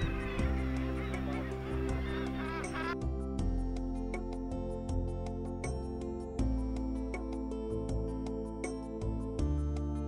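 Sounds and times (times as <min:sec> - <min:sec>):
background music sustained tones: 0:00.0 - 0:10.0.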